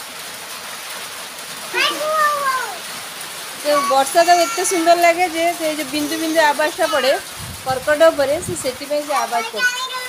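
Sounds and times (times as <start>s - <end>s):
rain hissing: 0.0s - 10.0s.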